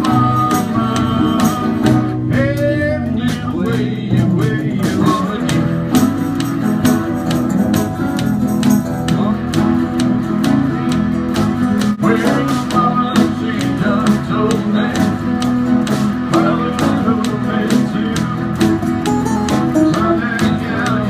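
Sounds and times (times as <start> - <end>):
acoustic guitar strumming: 0.0 - 21.0
sliding melodic guitar line: 0.0 - 21.0.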